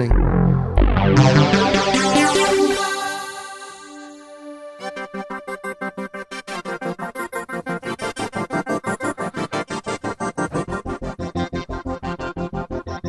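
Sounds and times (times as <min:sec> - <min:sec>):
deep bass: 0:00.0 - 0:02.7, 0:10.4 - 0:13.0
synthesizer pulsing chords: 0:00.0 - 0:13.0.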